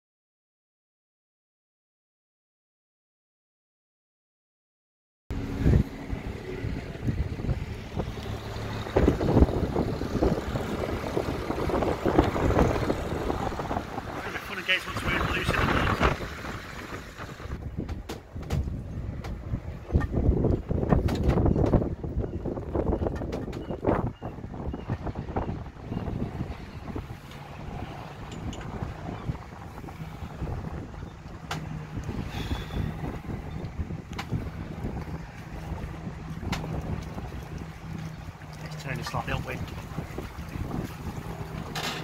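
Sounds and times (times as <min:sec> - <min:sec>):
wind buffeting microphone: 0:05.3 - 0:42.0.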